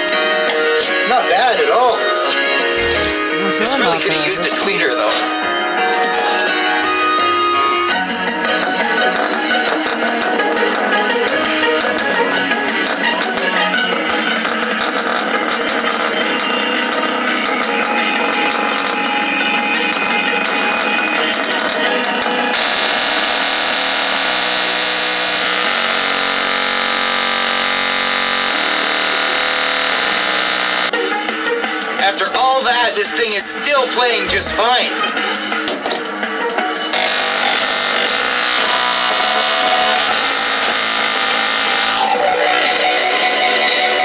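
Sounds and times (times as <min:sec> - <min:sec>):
music through small speaker: 0:00.0 - 0:44.0.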